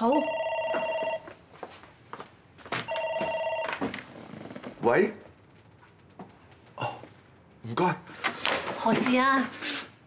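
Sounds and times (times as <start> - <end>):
desk telephone ringing: 0.0 - 1.4, 2.9 - 4.1.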